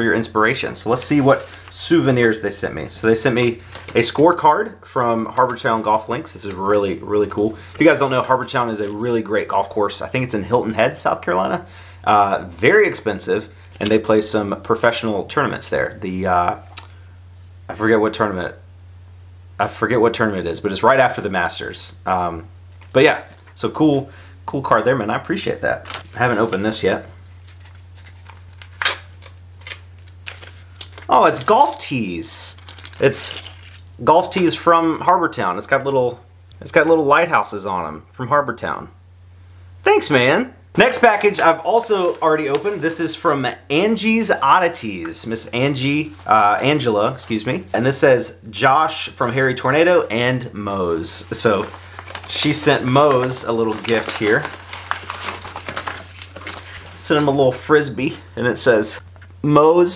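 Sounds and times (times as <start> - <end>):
steady low hum: 0.0 - 59.9
padded mailer crinkling: 0.5 - 9.3, 25.7 - 33.9, 40.8 - 43.2, 51.0 - 57.6
wrapping crackling and tearing: 0.8 - 4.4, 25.7 - 31.8, 32.5 - 33.9, 51.1 - 57.5.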